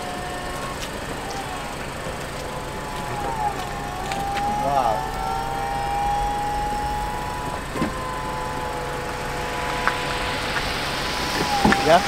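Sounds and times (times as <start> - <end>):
motor whine: 0.0 - 12.0.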